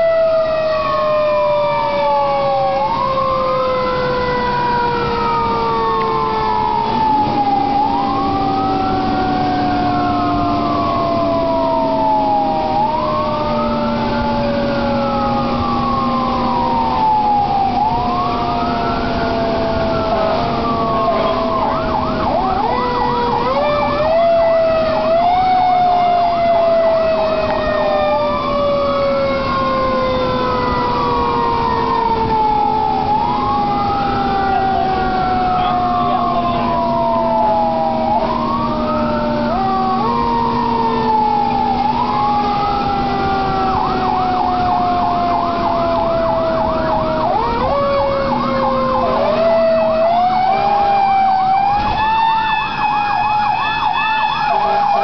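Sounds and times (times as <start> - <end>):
electronic siren wail and yelp: 0.0 - 55.0.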